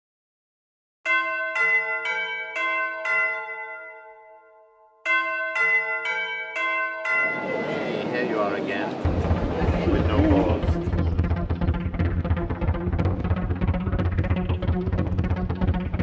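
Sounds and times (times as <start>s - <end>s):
bells struck and ringing: 1.1s - 9.3s
busy hall noise: 7.1s - 11.2s.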